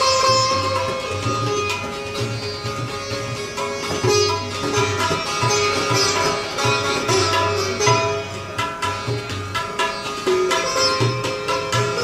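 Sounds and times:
sitar plucked melody: 0.0s - 12.0s
tabla strokes: 0.0s - 12.0s.

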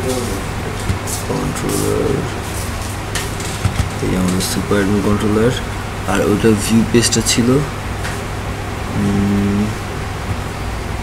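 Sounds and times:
person humming: 0.0s - 0.5s, 1.3s - 2.3s, 8.9s - 9.8s
steady low background hum: 0.0s - 11.0s.

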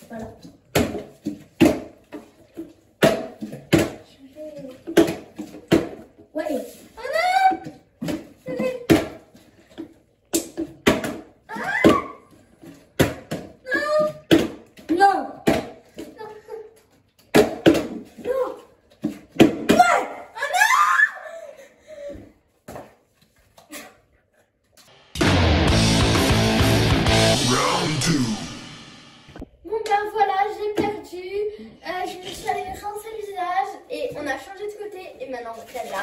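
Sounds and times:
children exclaiming and laughing: 6.4s - 7.8s, 11.5s - 12.3s, 16.2s - 16.8s, 19.8s - 21.8s
loud rock music: 24.9s - 29.4s.

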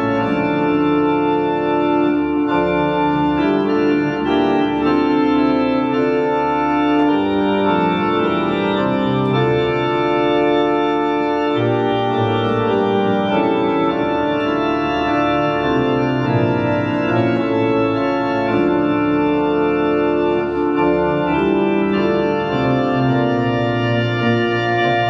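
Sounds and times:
electronic organ chords: 0.0s - 25.0s.

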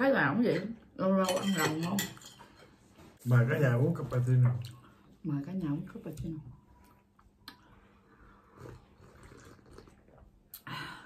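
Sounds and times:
sipping from mugs: 7.5s - 10.7s.

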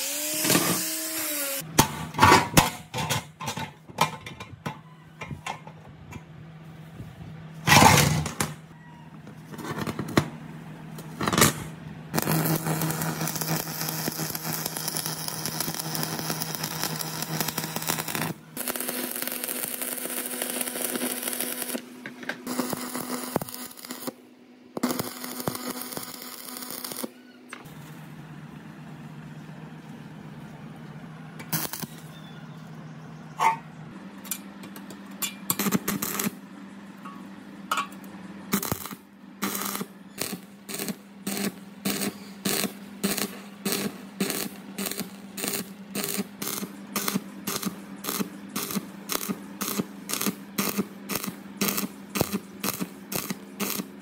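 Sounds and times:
welding crackle and hiss: 0.0s - 1.7s, 10.9s - 24.2s, 24.8s - 28.0s, 31.5s - 32.1s, 35.5s - 36.4s, 38.5s - 54.0s
steady hum: 0.0s - 54.0s.

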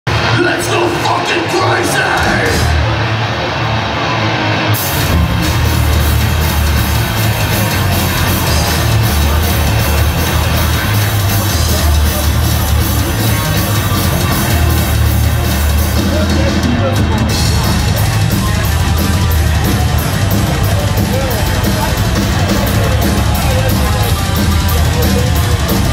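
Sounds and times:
live death metal band: 0.1s - 25.9s.

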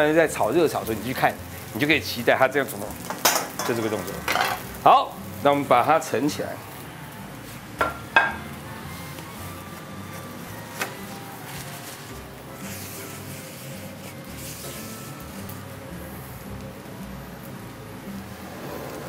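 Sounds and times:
quiet background music: 0.0s - 19.0s
kitchen utensils knocking: 3.1s - 4.6s.

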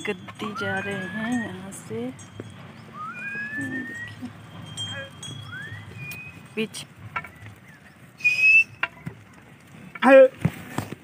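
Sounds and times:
herder whistling: 0.0s - 1.9s, 2.8s - 6.6s, 7.2s - 8.9s
flock of sheep and goats moving: 0.0s - 11.0s.

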